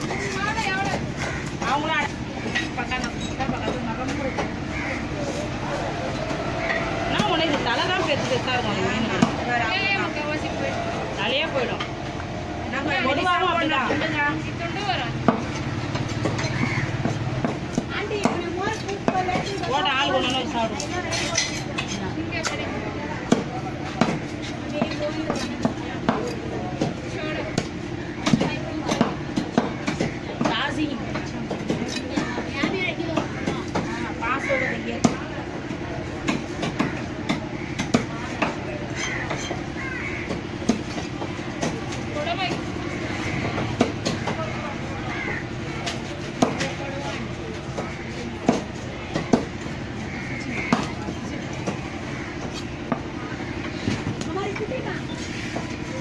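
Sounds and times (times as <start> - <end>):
steady mechanical rumble: 0.0 - 56.0.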